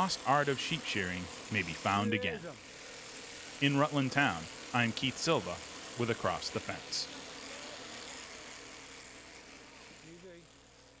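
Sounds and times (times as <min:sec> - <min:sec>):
electric shearing handpiece running: 0:00.0 - 0:11.0.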